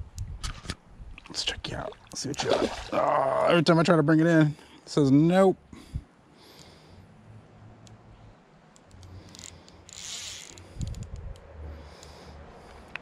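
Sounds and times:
low rumble of wind or handling: 0.0 - 3.5, 5.7 - 13.0
fishing reel drag clicking: 8.8 - 11.1.

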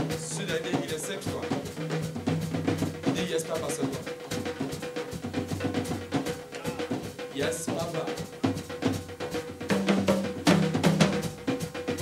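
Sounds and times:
drum kit playing fast: 0.0 - 12.0.

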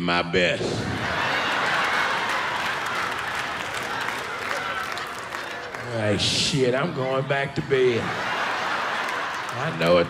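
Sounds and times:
audience applauding: 0.8 - 10.0.

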